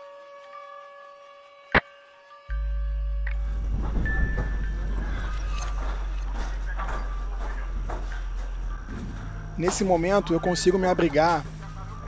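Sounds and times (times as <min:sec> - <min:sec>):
steady low rumble: 0:02.5 - 0:12.0
footsteps crunching on rubble: 0:03.6 - 0:10.4.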